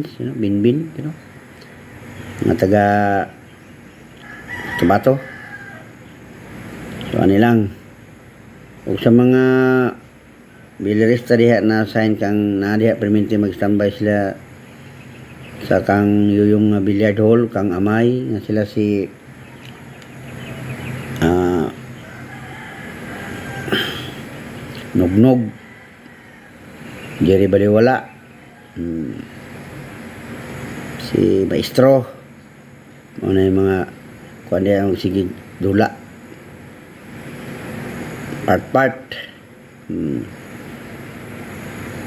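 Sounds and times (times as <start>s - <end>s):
man speaking: 0.0s - 1.2s, 2.3s - 3.4s, 4.7s - 5.3s, 7.0s - 7.9s, 8.8s - 10.0s, 10.8s - 14.5s, 15.6s - 19.2s, 21.2s - 21.9s, 24.8s - 25.6s, 27.2s - 28.2s, 28.8s - 29.4s, 31.0s - 32.3s, 33.2s - 36.1s, 38.4s - 40.4s
rooster crowing: 1.2s - 2.4s, 3.2s - 6.8s, 19.3s - 31.0s.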